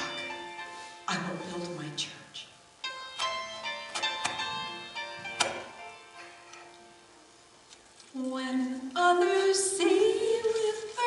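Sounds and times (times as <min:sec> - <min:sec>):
faint piano accompaniment: 0:00.0 - 0:11.0.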